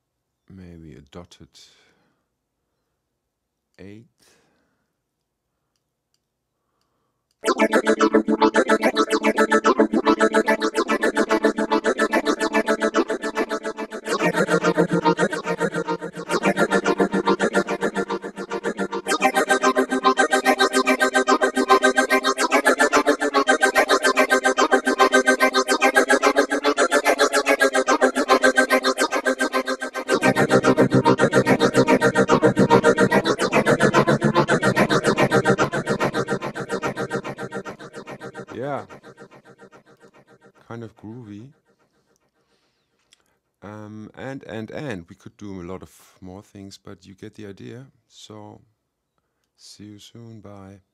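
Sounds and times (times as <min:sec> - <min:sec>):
synthesized sung syllables pulsing: 0:07.4 - 0:40.8.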